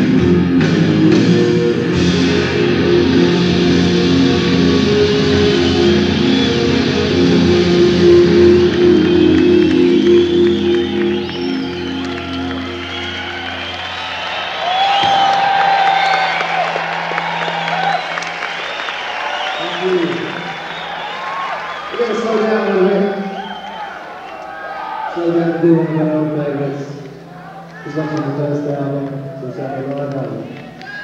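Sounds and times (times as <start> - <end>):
rock band electric guitar chord: 0.0 - 22.2
crowd cheering and applauding: 0.7 - 31.0.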